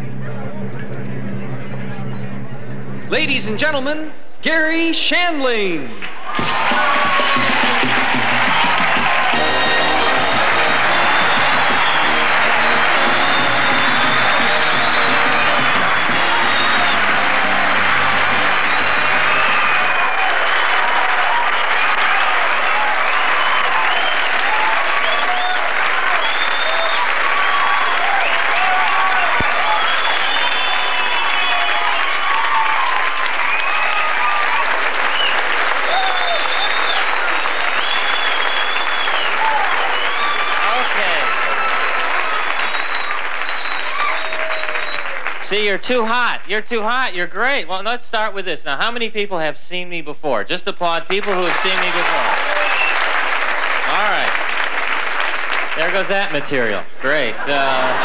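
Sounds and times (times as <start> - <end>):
audience applauding and cheering: 6.0 - 46.4, 51.1 - 58.0
band walk-on music: 6.3 - 20.3.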